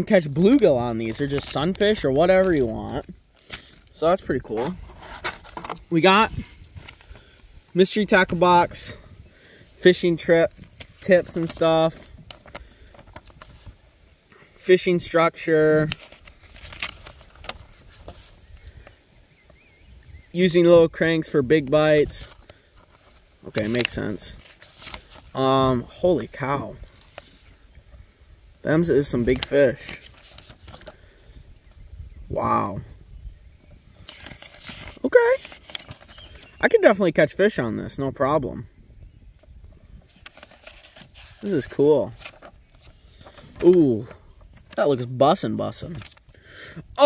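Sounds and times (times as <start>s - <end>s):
paper pages turning: 0.0s - 14.1s, 14.7s - 18.9s, 21.2s - 27.5s, 28.7s - 31.2s, 33.9s - 36.6s, 39.4s - 46.3s
paper booklet handling ticks: 10.5s - 13.8s, 15.9s - 18.4s, 22.3s - 25.2s, 34.0s - 36.5s.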